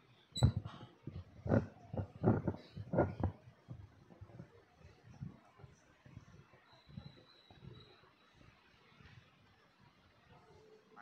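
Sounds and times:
microphone stand bumps and rubbing: 0.4s - 3.4s.

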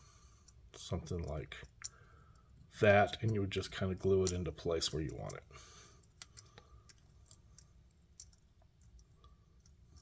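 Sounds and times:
air conditioner hum: 0.0s - 10.0s
faint plastic clicks: 0.4s - 10.0s.

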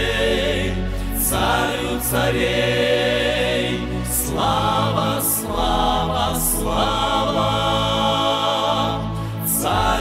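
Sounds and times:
choir singing worship song: 0.0s - 10.0s.

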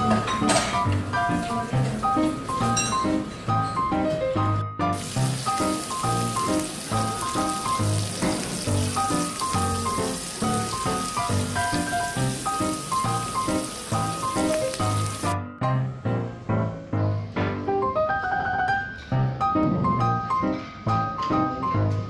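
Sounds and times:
meat sizzling on grill: 5.0s - 15.4s.

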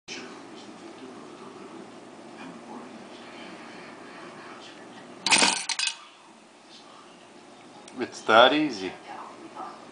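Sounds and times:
metallic clatter of coin bank: 5.3s - 6.0s
sharp clicks of coin settling: 5.3s - 6.0s.

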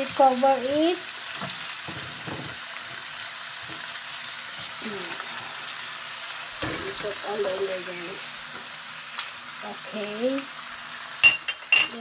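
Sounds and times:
food sizzling in a frying pan: 0.0s - 12.0s.

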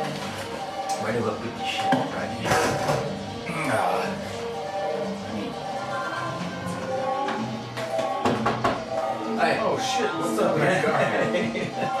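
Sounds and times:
held synth notes: 0.0s - 12.0s
drum hits: 7.3s - 9.0s.

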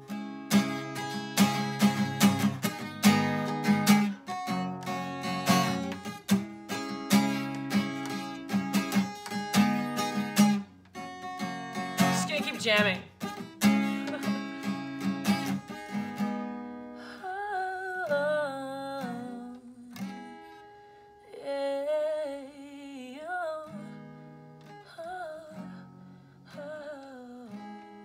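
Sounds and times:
acoustic guitar strumming: 0.0s - 17.0s
woman singing wordlessly: 12.0s - 13.1s, 17.0s - 20.4s, 21.2s - 24.1s, 24.8s - 28.0s.

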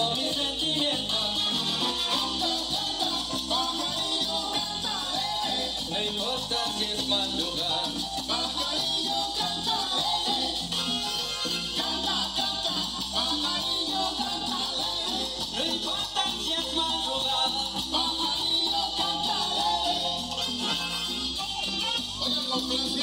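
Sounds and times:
latin dance music with singing: 0.0s - 23.0s.

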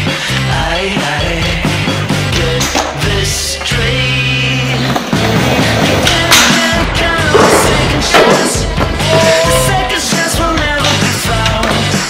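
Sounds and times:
loud rock music: 0.0s - 12.0s
skateboard wheels rolling on concrete: 2.0s - 12.0s.

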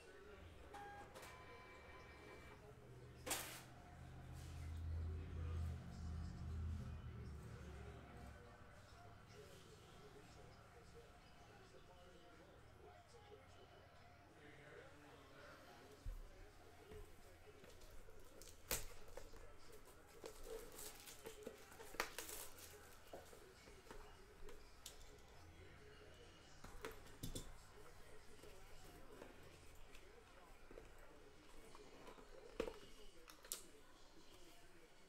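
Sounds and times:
cardboard and packaging rustling: 17.6s - 25.2s.

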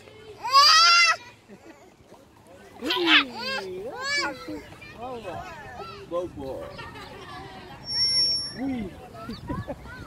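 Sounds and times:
children's gliding calls: 0.0s - 1.9s
child squealing: 0.4s - 1.2s.

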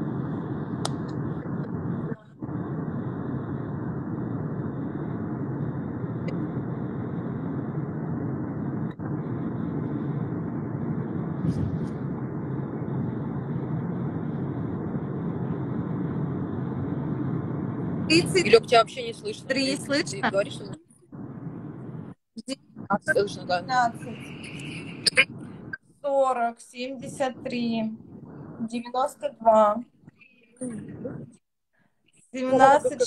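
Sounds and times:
muffled car road and engine noise: 4.2s - 22.0s.

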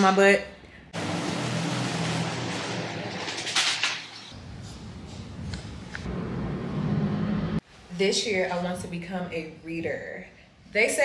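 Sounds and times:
distant city traffic hum: 0.9s - 7.6s.

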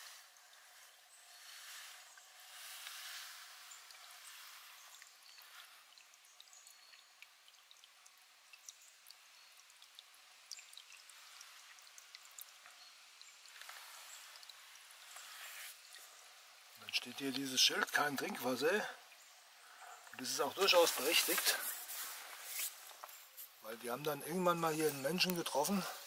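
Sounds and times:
water dripping: 0.0s - 26.0s
water pouring into puddle: 0.0s - 26.0s.

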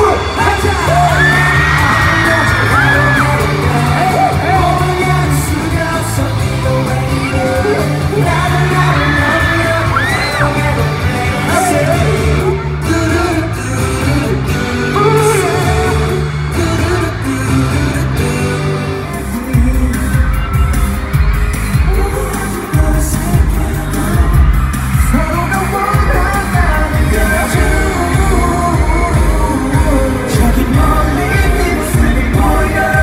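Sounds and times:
fans yelling and whooping: 0.0s - 33.0s
pop song over sound system: 0.0s - 33.0s.

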